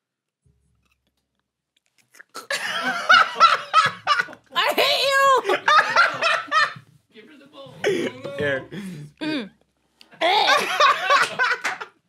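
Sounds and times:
woman laughing: 2.5 - 6.8, 10.2 - 11.7.

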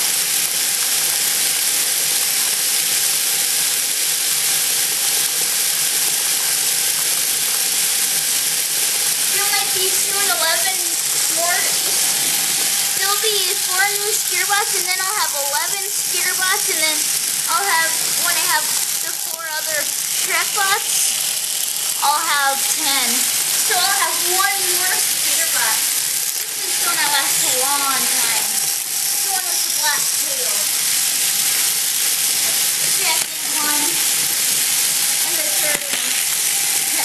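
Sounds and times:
steady loud hiss: 0.0 - 37.0
indistinct talking: 9.2 - 31.1, 32.4 - 34.4, 35.2 - 36.3.

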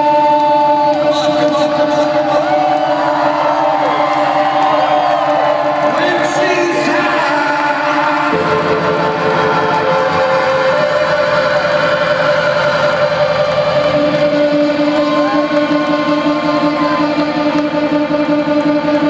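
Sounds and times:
rock band droning: 0.6 - 19.0.

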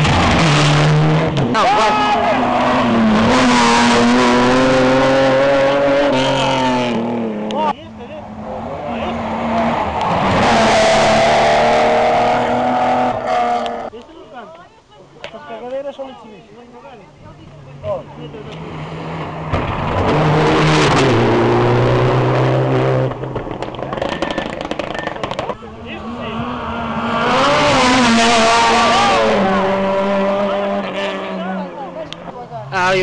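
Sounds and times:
rally car engines revving: 0.0 - 14.0, 17.2 - 33.0.

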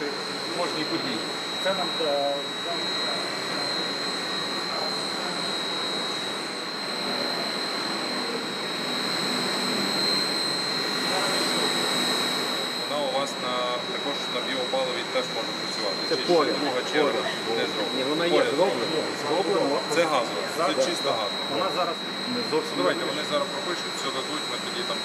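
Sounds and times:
boiler machinery roar: 0.0 - 25.0
high-pitched whine: 0.0 - 25.0.

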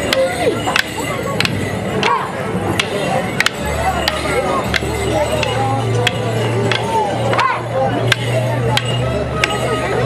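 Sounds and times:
wooden sticks clacking: 0.0 - 9.8
folk dance music: 0.0 - 10.0.

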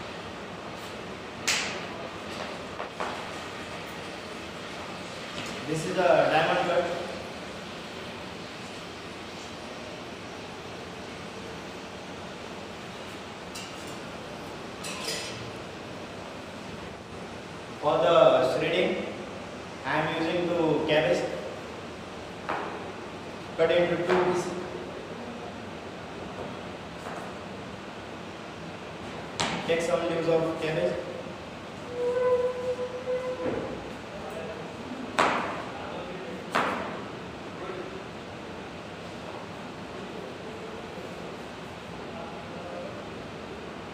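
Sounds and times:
kitchen background hiss: 0.0 - 32.2.

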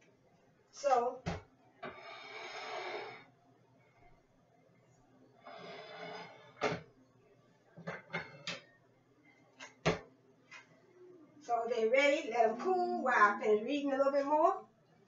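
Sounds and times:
baking pans handled on counter: 7.8 - 8.6.

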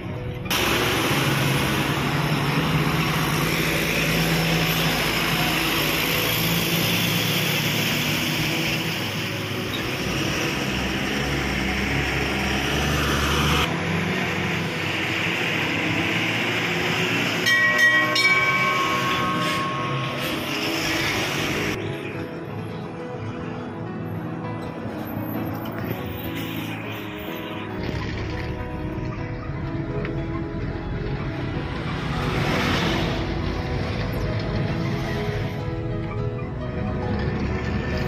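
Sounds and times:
heavy vehicle engine and road noise: 0.0 - 38.0.

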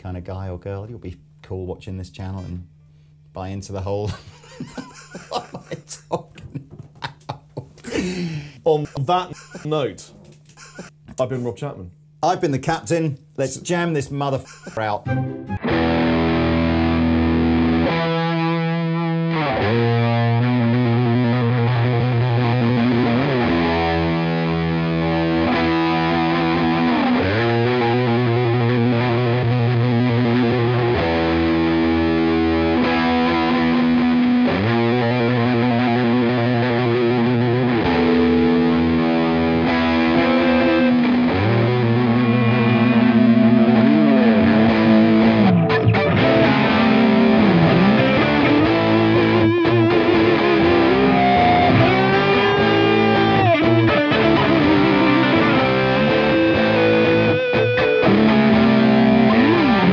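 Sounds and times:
distorted electric guitars: 4.6 - 11.1, 14.3 - 59.9.

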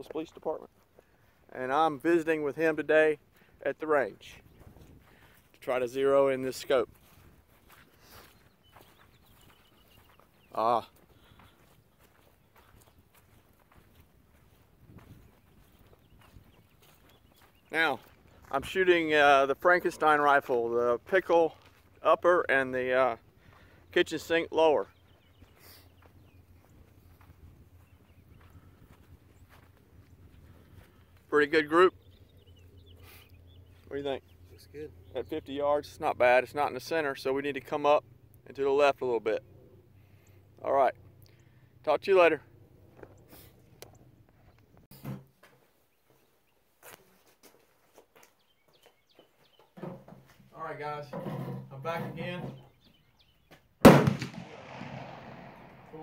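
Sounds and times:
gunshot with echo: 53.8 - 56.0.

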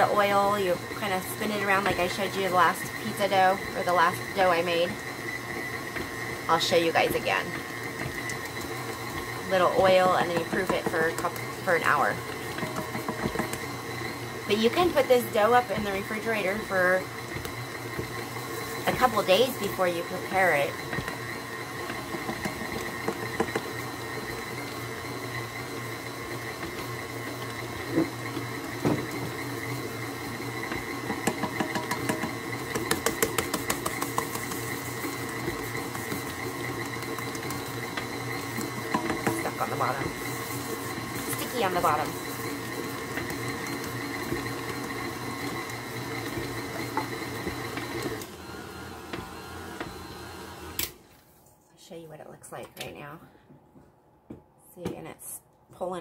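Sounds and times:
stand mixer running: 0.0 - 51.0.

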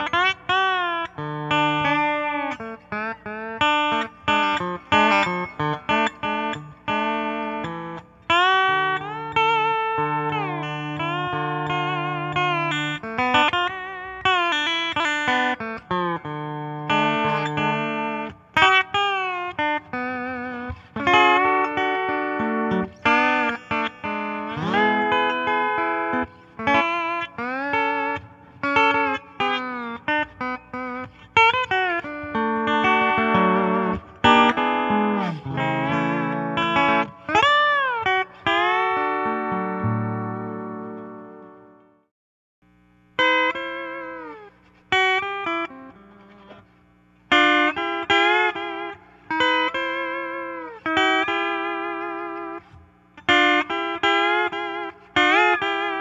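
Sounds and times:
lap steel guitar sliding notes: 0.0 - 41.6, 47.3 - 56.0.

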